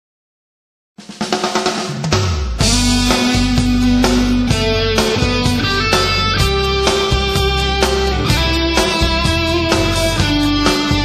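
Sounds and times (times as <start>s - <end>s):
snare drum fill: 1.0s - 11.0s.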